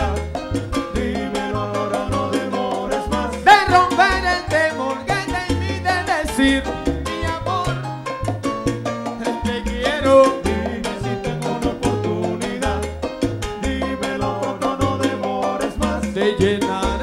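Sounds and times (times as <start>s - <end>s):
hand percussion beat: 0.0s - 17.0s
live salsa band: 0.0s - 17.0s
upright bass notes: 0.0s - 17.0s.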